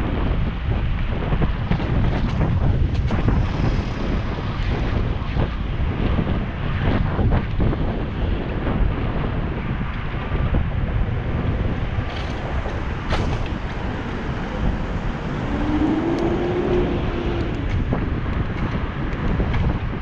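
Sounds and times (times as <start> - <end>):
road and traffic rumble: 0.0 - 20.0
wind buffeting microphone: 0.0 - 20.0.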